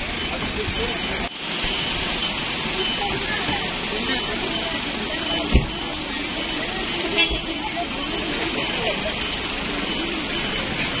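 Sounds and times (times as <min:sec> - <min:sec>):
people talking: 0:00.0 - 0:01.3, 0:02.0 - 0:11.0
vehicles running: 0:00.0 - 0:11.0.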